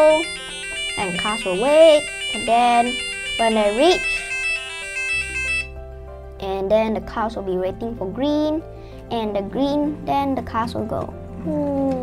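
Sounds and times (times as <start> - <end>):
electronic buzzer beeping melody: 0.0 - 5.8.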